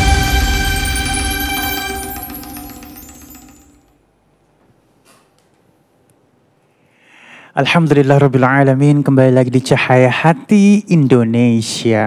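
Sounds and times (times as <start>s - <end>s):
tv theme music notes: 0.0s - 3.9s.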